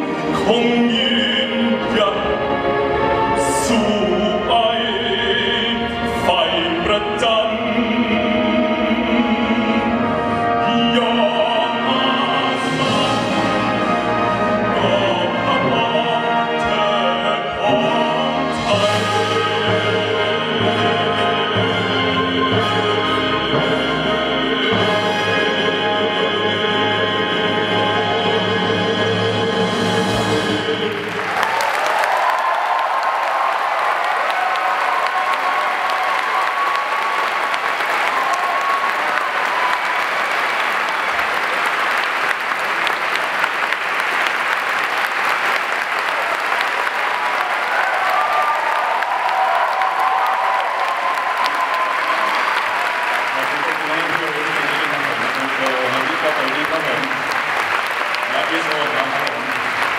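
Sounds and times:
audience applause: 30.2 - 59.9
man speaking over microphone: 53.3 - 57.3, 58.2 - 59.6.

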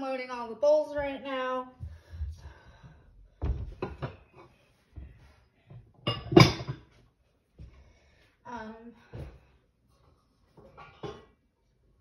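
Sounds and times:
bowls clinking and clattering: 6.0 - 6.9.

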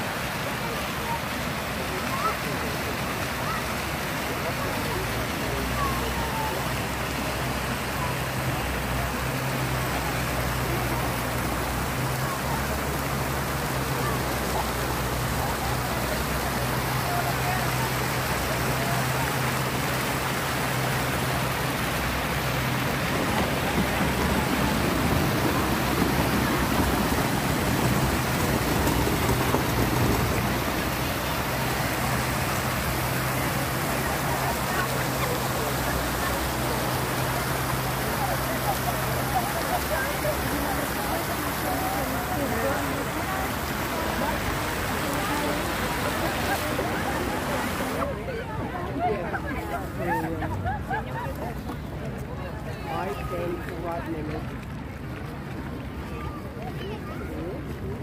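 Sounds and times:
fountain splashing into pool: 0.0 - 58.0.

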